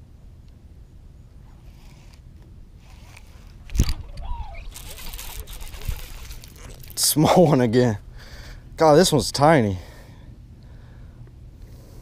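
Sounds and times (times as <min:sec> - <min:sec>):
sleeve rubbing over camera: 0:02.8 - 0:07.0.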